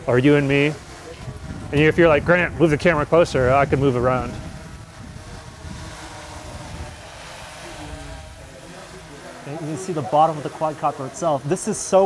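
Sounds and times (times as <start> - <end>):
wind on microphone: 0.0 - 11.0
drone rotors humming: 0.0 - 12.0.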